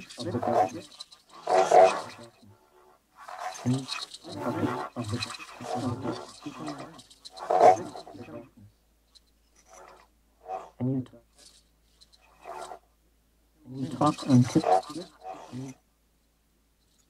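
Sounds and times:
manipulated voice tape music: 0.0 - 2.5, 3.5 - 8.7, 13.7 - 15.8.

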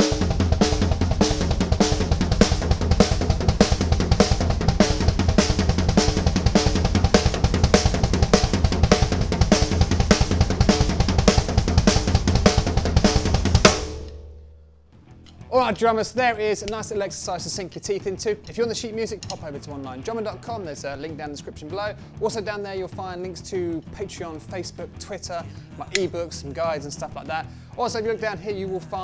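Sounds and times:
kick drum: 0.0 - 14.0
snare and floor tom strokes: 0.0 - 14.6.

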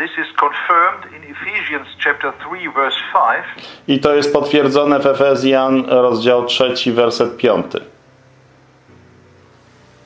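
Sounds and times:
man speaking over video call: 0.0 - 8.0.

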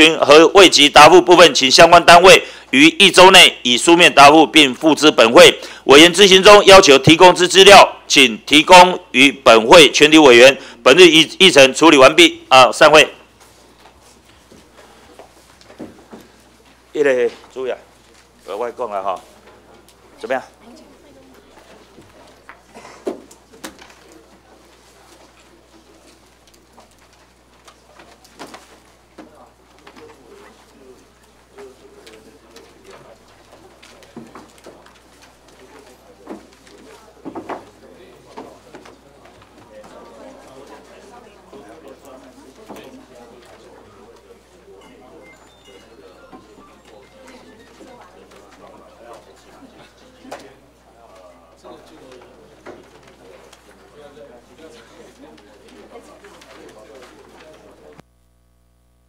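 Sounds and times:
low murmuring voices: 13.2 - 58.1
people talking indistinctly: 29.1 - 58.0.

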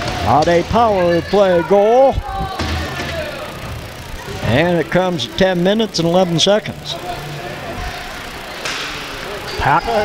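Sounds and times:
crowd murmur and rink noise: 0.0 - 10.0.

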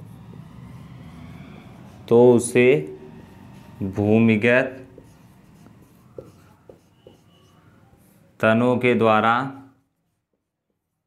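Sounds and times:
marker pen scratching on whiteboard: 3.2 - 8.4, 9.8 - 11.0.

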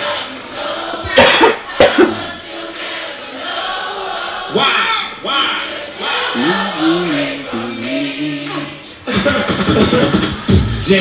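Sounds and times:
man coughing hard: 1.1 - 2.3
hip-hop music: 6.2 - 11.0.

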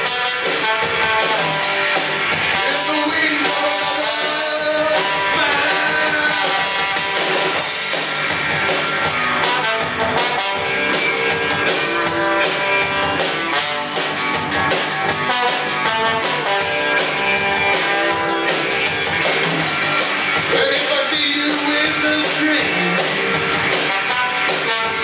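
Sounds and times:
trombone holding notes: 0.0 - 7.6, 9.3 - 14.3, 15.1 - 18.6, 23.7 - 25.0
bass guitar: 0.0 - 25.0
drum kit: 0.0 - 25.0
electric guitar: 0.0 - 25.0.

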